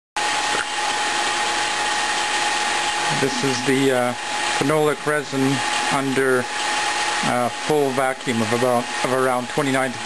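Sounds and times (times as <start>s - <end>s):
vacuum pump hissing and whining: 0.2s - 10.0s.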